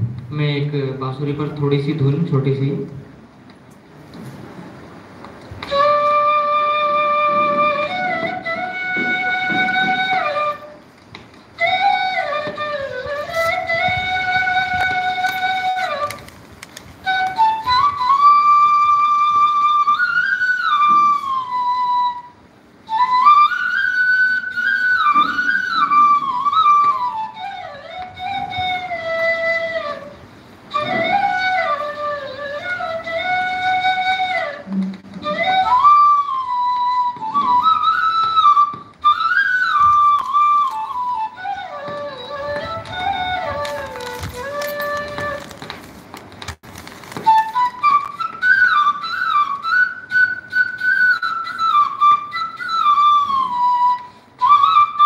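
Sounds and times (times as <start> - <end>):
bamboo flute melody: 5.5 - 46.0, 47.0 - 55.0.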